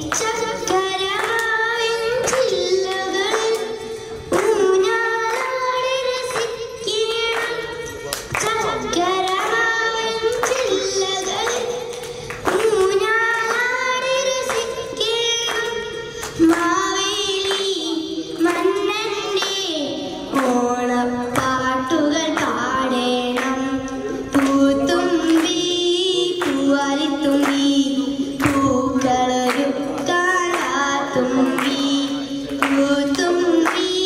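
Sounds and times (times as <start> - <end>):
girl singing: 0.0 - 34.0.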